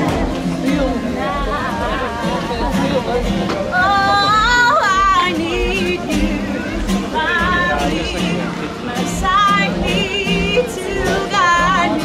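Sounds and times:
acoustic guitar strumming: 0.0 - 12.0
person singing with vibrato: 3.7 - 12.0.

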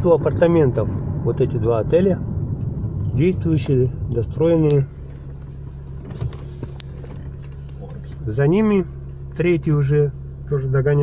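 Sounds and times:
car engine hum: 0.0 - 11.0
road noise: 0.0 - 11.0.

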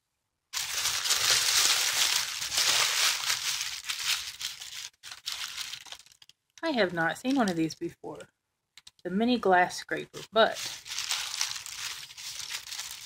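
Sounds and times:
tissue paper crinkling: 0.6 - 6.3, 10.2 - 13.0.

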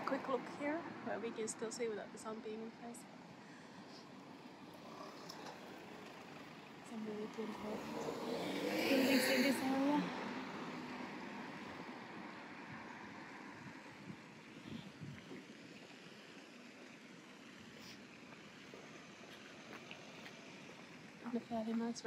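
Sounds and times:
distant road traffic hum: 0.0 - 22.0.

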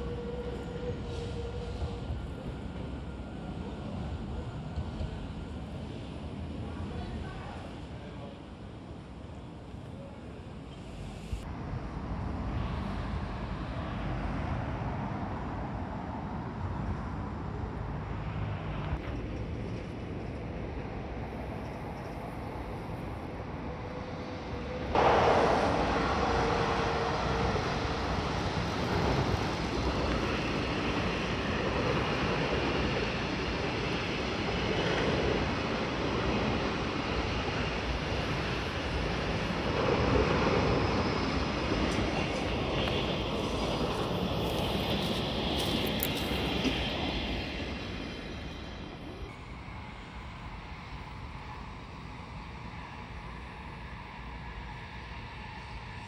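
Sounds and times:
train running past: 0.0 - 56.0.

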